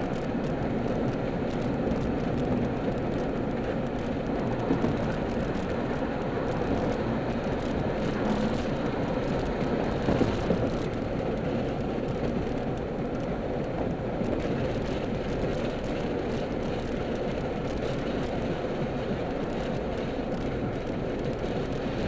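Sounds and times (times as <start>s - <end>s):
car cabin road and engine noise: 0.0s - 22.0s.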